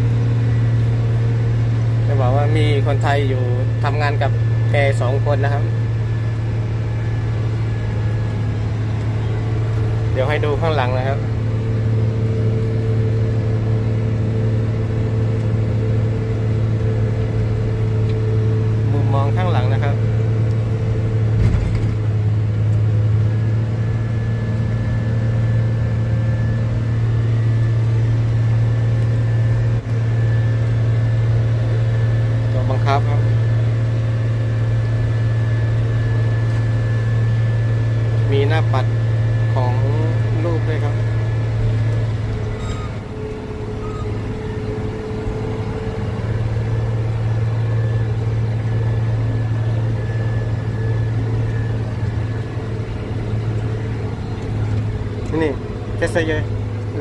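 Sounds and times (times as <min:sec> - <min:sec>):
tractor diesel engine drone: 0:00.0 - 0:57.0
faint high whine: 0:00.4 - 0:13.5, 0:23.1 - 0:57.0.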